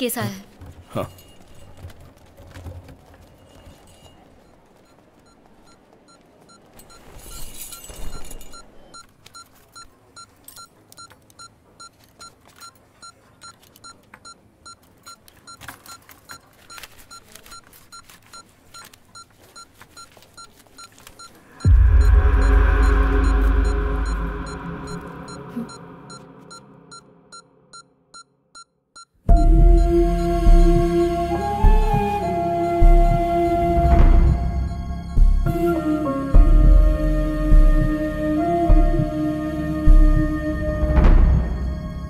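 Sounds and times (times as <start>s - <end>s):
patient monitor beeping: 4.2s - 31.0s
film score music: 21.5s - 27.7s, 29.3s - 42.0s.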